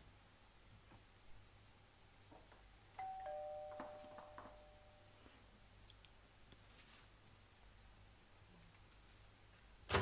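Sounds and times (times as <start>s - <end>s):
two-tone doorbell chime: 3.0s - 5.1s.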